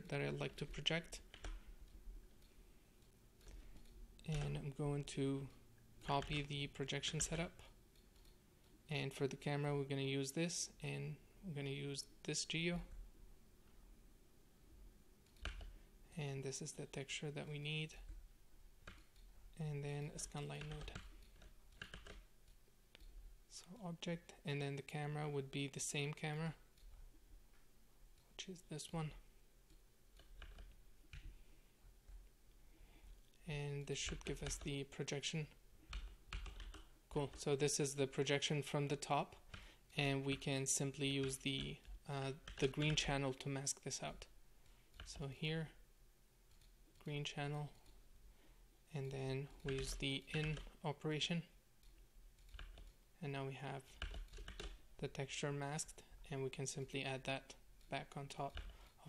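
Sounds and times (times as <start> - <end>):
computer mouse clicks: 7.9 - 8.8, 46.5 - 47.1.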